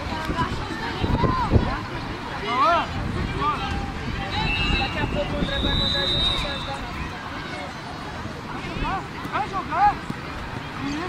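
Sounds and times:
people around football pitch: 0:00.0 - 0:11.0.

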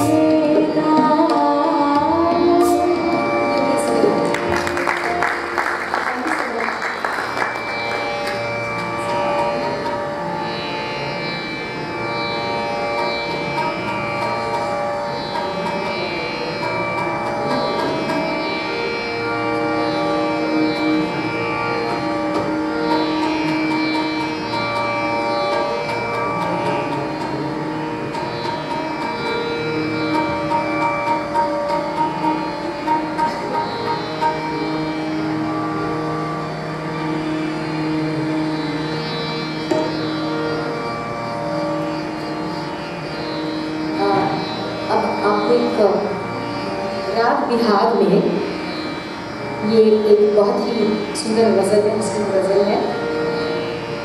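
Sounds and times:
tabla: 0:00.0 - 0:54.0
violin and harmonium: 0:00.0 - 0:54.0.

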